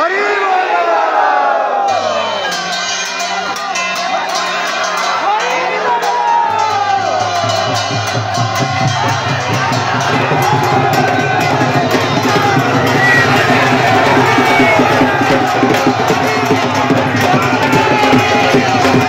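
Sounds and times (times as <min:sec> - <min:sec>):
crowd shouting and cheering: 0:00.0 - 0:19.0
drumming and music: 0:06.3 - 0:19.0.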